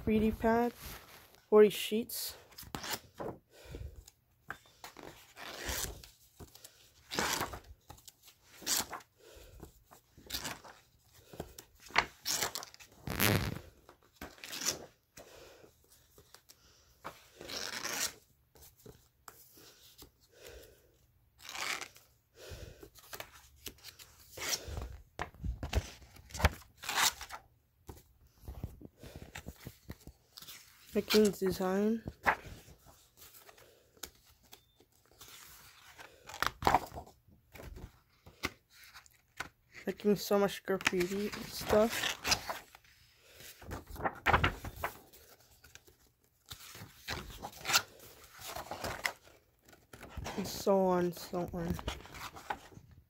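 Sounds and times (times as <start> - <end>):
paper rustling and crinkling: 2.4 - 3.4, 4.5 - 15.0, 22.8 - 53.0.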